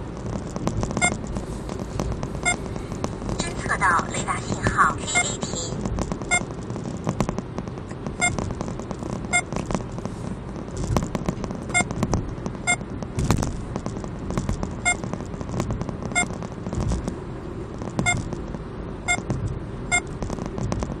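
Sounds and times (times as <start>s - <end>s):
road noise inside car: 0.0s - 21.0s
radar detector beeps: 1.0s - 1.2s, 4.9s - 6.5s, 8.2s - 8.5s, 9.3s - 9.6s, 11.7s - 11.9s, 12.6s - 12.9s, 14.8s - 15.1s, 16.1s - 16.4s, 18.0s - 18.3s, 19.1s - 19.3s, 19.9s - 20.2s.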